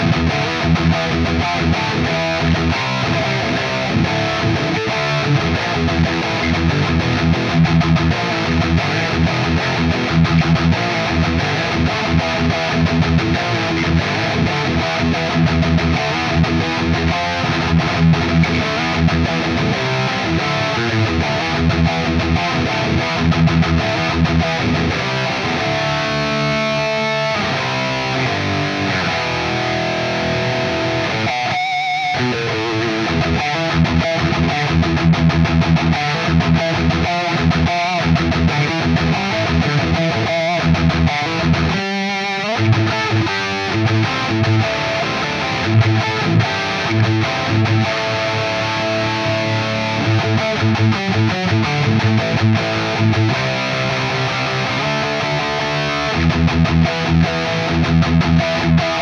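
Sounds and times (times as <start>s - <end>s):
distorted electric guitar riffing: 0.0s - 59.0s.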